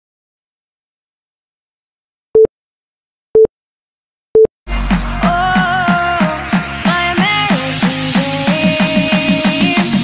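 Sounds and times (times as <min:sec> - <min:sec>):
music with steady beat: 0:04.7 - 0:10.0.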